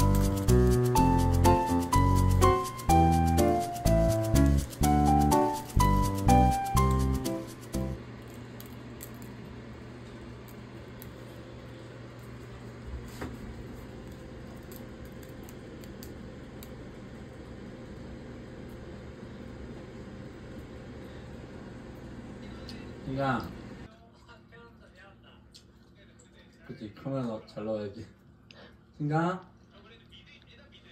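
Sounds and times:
background music: 0.0s - 8.0s
steady low hum: 0.0s - 26.7s.

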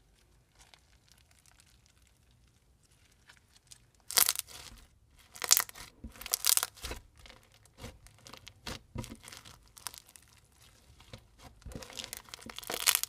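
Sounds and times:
slime crunching and crackling: 0.0s - 13.0s.

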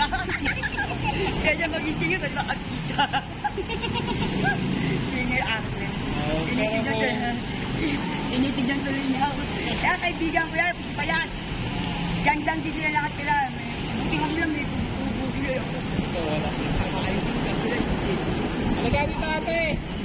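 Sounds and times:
road traffic rumbling: 0.0s - 20.0s.

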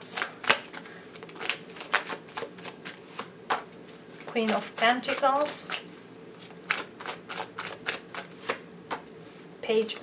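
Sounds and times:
cards rustling: 0.0s - 5.8s, 6.4s - 9.0s
cards snapping: 0.1s - 3.7s, 6.6s - 9.0s.

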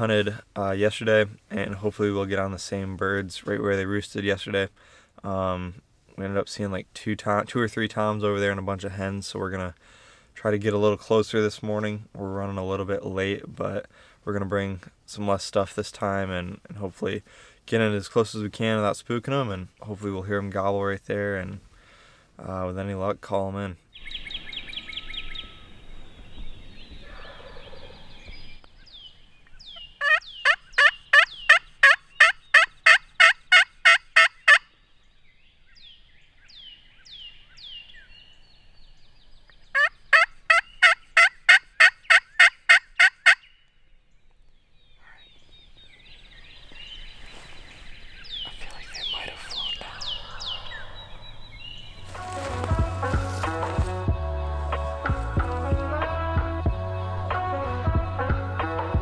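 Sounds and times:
turkey pot call yelps: 29.7s - 34.7s, 39.7s - 43.5s.

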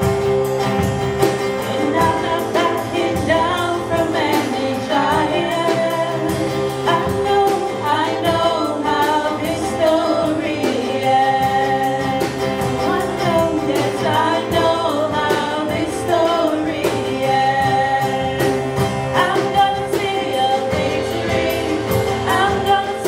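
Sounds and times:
acoustic guitar: 0.0s - 23.0s
drum kit beat: 0.0s - 23.0s
lead vocals singing: 1.5s - 23.0s.

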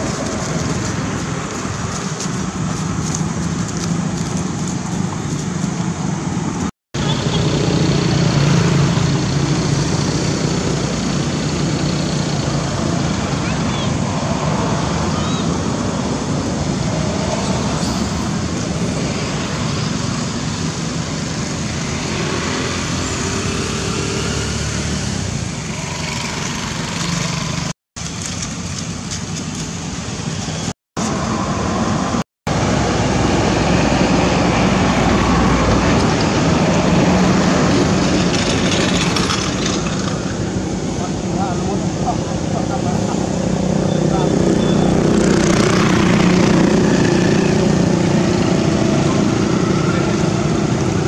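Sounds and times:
motorbikes passing: 0.0s - 51.0s
road traffic noise: 0.0s - 51.0s.

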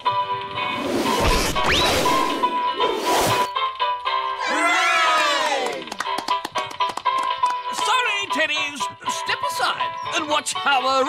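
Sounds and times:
cartoon background music: 0.0s - 11.0s
short rising swoop: 0.7s - 3.5s
comic crash sound effect: 1.0s - 3.5s.

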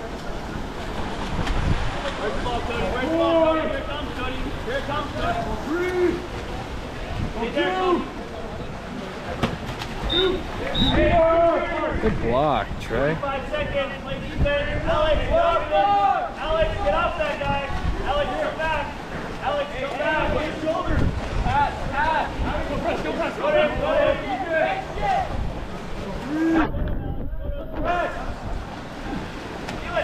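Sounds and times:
swimmers splashing in pool: 0.0s - 14.4s, 15.1s - 26.8s, 27.6s - 30.0s
wind on microphone: 1.0s - 2.1s, 10.8s - 15.7s, 25.2s - 28.8s
people shouting and calling: 13.3s - 18.9s.

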